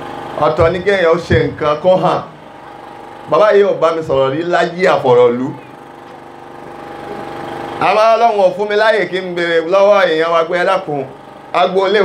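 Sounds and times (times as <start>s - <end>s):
engine humming: 0.0s - 8.0s
man talking: 0.4s - 2.3s, 3.3s - 5.7s, 7.8s - 12.0s.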